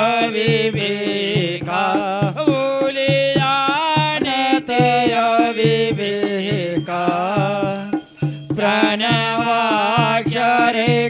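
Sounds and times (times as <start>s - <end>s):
person singing a hymn: 0.0s - 11.0s
steady percussion beat: 0.0s - 11.0s.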